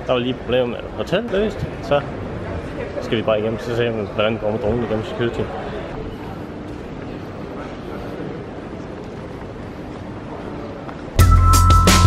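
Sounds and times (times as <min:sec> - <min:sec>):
busy terminal hall noise: 0:00.0 - 0:12.0.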